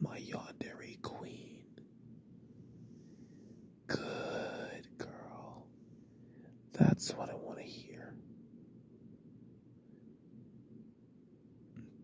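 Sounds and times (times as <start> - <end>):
man whispering: 0.0 - 1.7, 3.9 - 5.7, 6.7 - 8.2.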